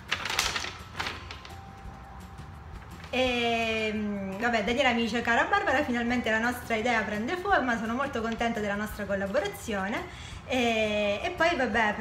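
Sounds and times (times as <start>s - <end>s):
paper letter rustling: 0.0s - 1.6s
faint background music: 0.0s - 12.0s.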